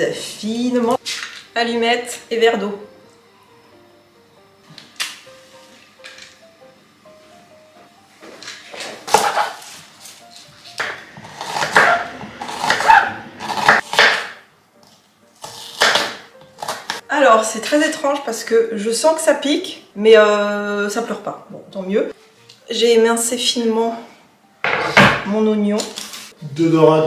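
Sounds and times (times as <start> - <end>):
quiet background music: 0.0 - 27.0
knife slicing onion on cutting board: 9.0 - 17.0.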